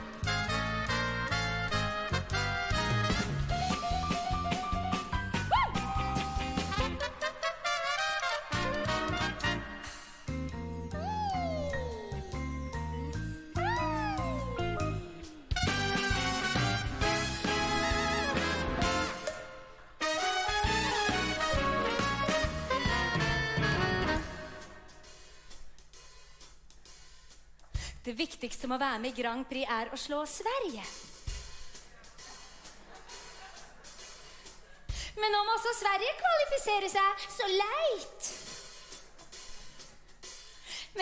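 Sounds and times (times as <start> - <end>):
band playing swing music: 0.0 - 27.6, 30.7 - 35.2, 38.2 - 40.6.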